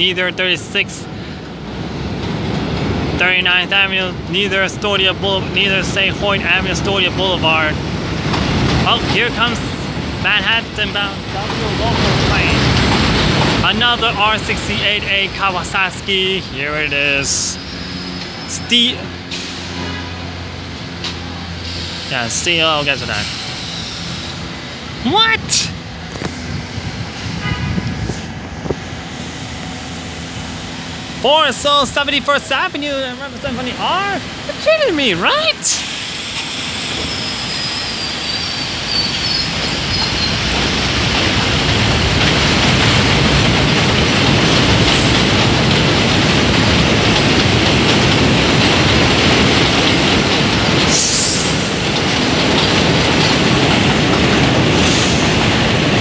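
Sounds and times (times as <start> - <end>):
subway train humming: 0.0 - 56.0.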